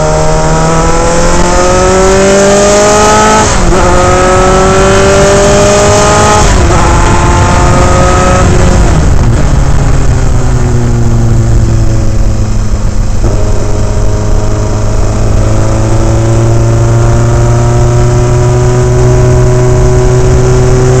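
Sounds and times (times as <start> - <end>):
race car engine accelerating: 0.0 - 21.0.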